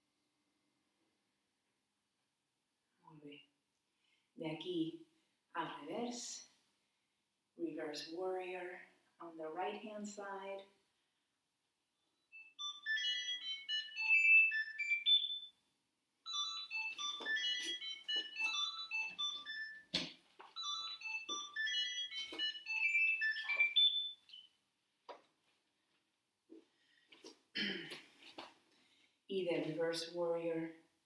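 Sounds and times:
phone ringtone melody: 12.3 - 15.5, 16.2 - 24.5.

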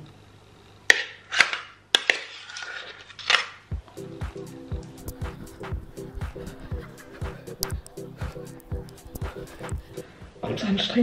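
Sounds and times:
music with steady beat: 3.7 - 10.5.

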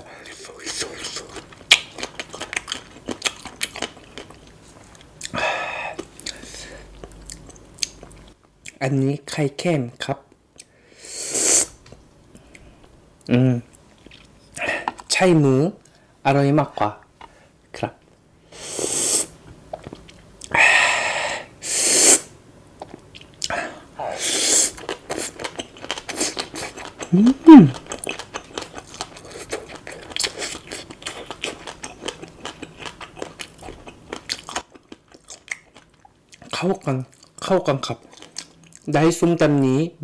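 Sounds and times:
chewing crunchy salad: 0.2 - 8.8, 13.7 - 15.2, 19.7 - 20.5, 22.8 - 23.6, 24.6 - 38.9
person humming: 27.1 - 27.8.

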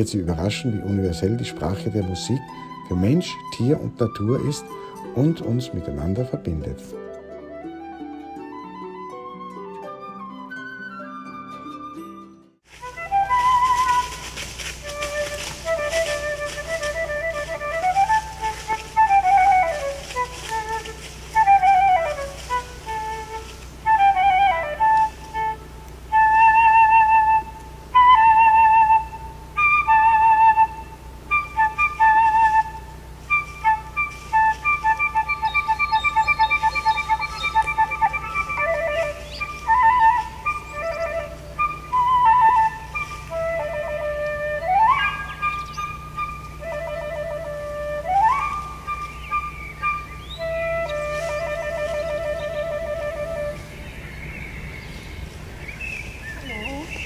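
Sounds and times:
wooden flute playing slow melody: 0.0 - 57.0.

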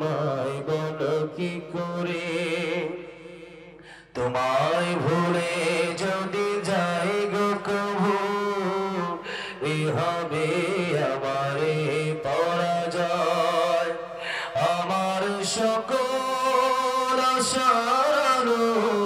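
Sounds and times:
man chanting into a microphone: 0.0 - 19.0.

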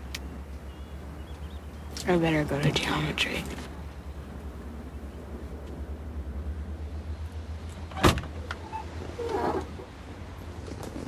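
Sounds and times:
low steady rumble: 0.0 - 11.0
car door slamming: 7.9 - 8.4.

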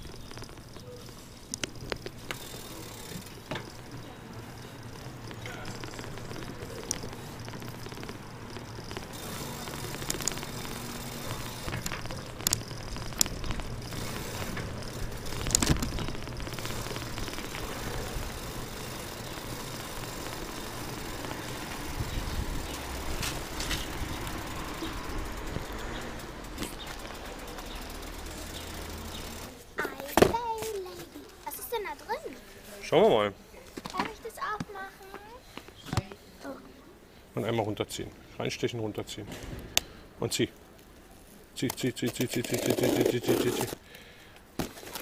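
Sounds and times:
bicycle rolling over paving: 0.0 - 32.0, 40.7 - 45.0.

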